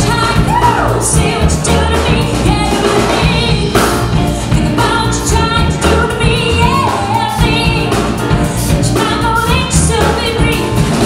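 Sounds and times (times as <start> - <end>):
bass: 0.0 - 11.0
drums: 0.0 - 11.0
piano: 0.0 - 11.0
woman singing lead: 0.0 - 11.0.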